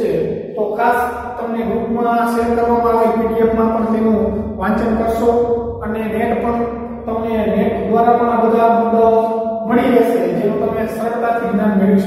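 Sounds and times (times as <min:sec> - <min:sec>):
man chanting a long tone: 0:00.0 - 0:12.0.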